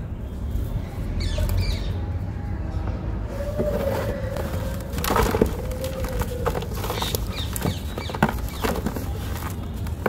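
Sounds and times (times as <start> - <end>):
dry sand crumbling and snapping: 4.3 - 10.0.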